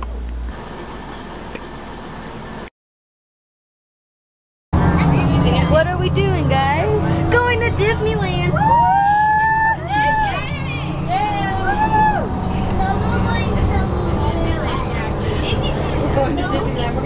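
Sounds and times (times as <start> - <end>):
bus engine rumbling: 0.0 - 2.7, 4.8 - 17.0
girls chattering: 5.0 - 8.8, 9.7 - 17.0.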